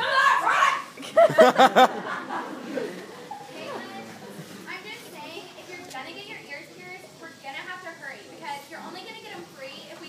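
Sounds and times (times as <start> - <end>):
faint chatter of voices: 2.3 - 10.0.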